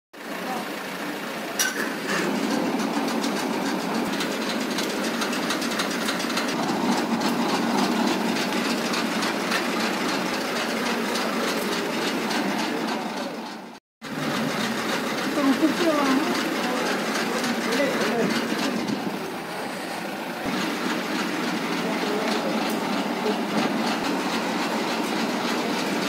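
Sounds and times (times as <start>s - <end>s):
engine running steadily: 0.2s - 26.0s.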